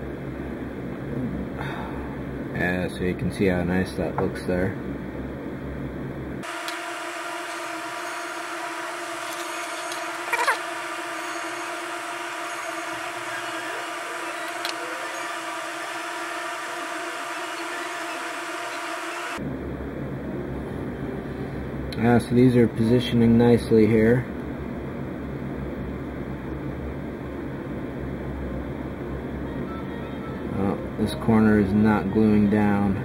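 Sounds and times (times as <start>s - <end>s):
machine hum with faint whine: 0.0s - 33.0s.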